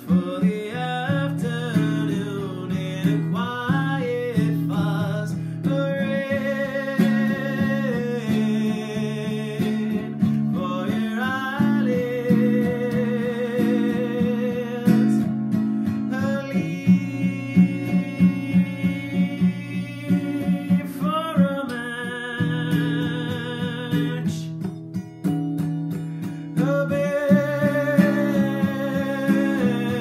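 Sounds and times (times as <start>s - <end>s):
acoustic guitar strumming: 0.0s - 30.0s.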